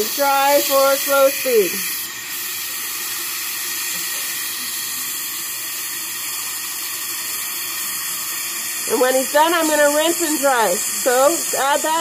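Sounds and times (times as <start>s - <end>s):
air syringe hissing: 0.0s - 12.0s.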